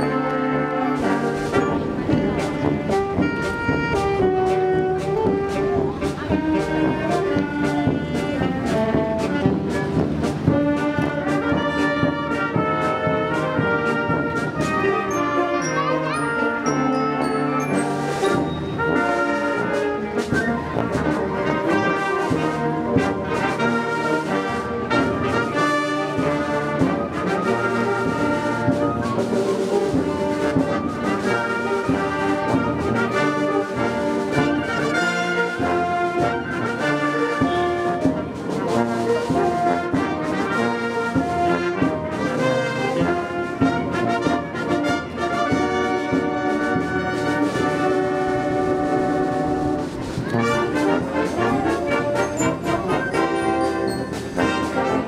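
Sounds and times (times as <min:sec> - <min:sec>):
concert band playing: 0:00.0 - 0:55.0.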